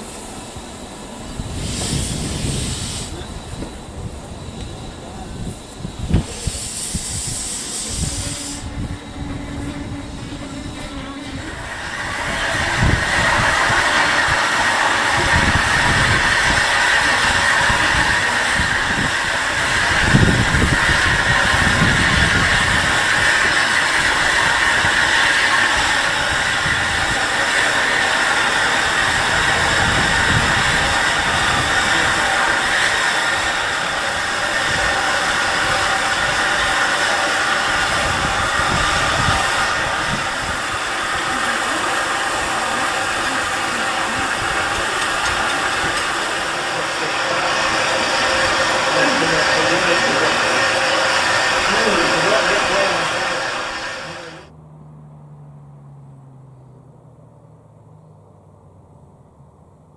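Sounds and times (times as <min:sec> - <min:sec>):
steam locomotive hissing: 0:00.0 - 0:54.5.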